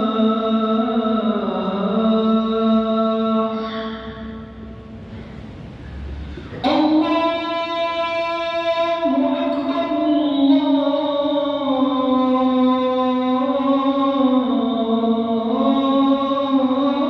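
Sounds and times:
man chanting call to prayer: 0.0 - 4.9, 6.6 - 17.0.

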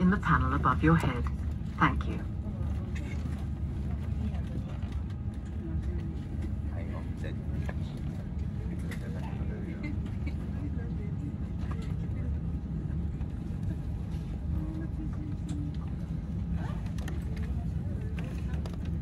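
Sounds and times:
airliner cabin rumble: 0.0 - 19.0
faint passenger voices: 0.0 - 19.0.

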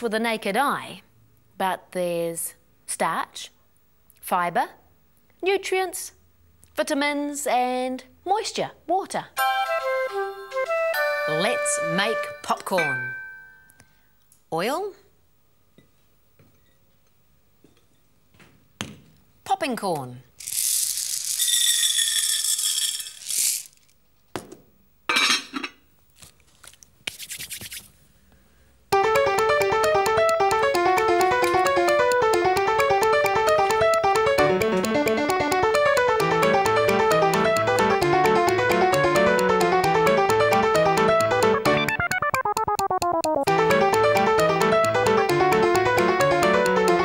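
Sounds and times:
bouncy keyboard music: 9.4 - 13.7, 28.9 - 47.0
popcorn kernels rattling in saucepan: 20.4 - 23.9.

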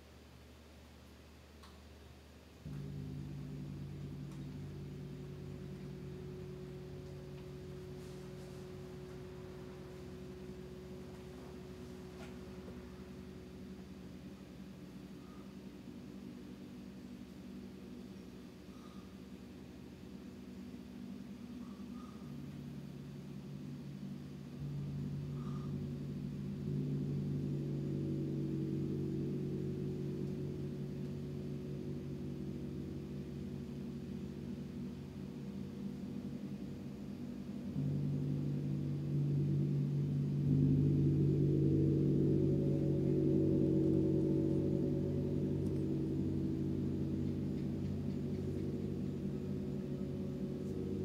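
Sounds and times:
gongs humming: 2.6 - 51.0.

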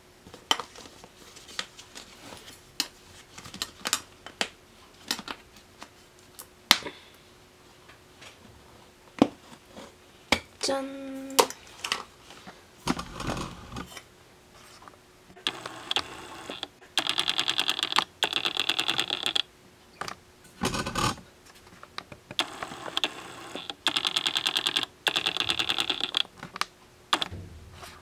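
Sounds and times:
rapid mechanical clicking: 15.4 - 19.5, 22.3 - 26.3, 27.1 - 27.4
dull knocks: 27.3 - 28.0.

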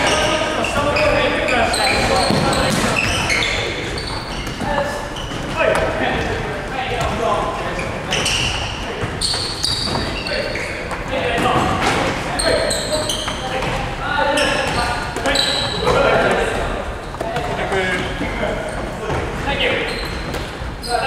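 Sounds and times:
players' voices: 0.0 - 21.0
balls thudding on wooden floor: 2.2 - 3.2.

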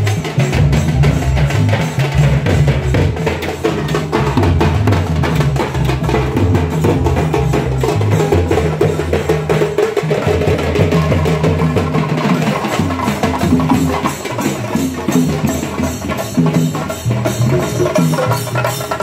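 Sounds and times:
booming low drum beats: 0.0 - 9.6
drum band playing fast rhythm: 0.0 - 19.0.

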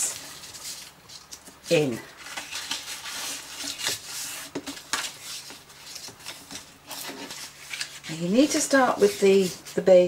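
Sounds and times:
cardstock rustling and scraping: 0.0 - 10.0.

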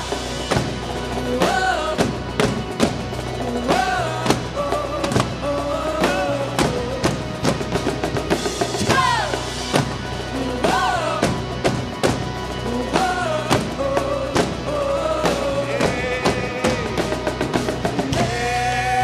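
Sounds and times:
electric guitar: 0.0 - 19.0
live band playing: 0.0 - 19.0
snare and bass drums: 0.0 - 19.0.

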